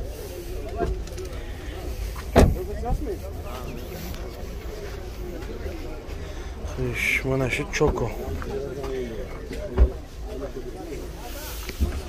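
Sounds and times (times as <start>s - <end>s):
murmur of voices: 0.0s - 12.0s
car door shutting: 2.2s - 3.1s.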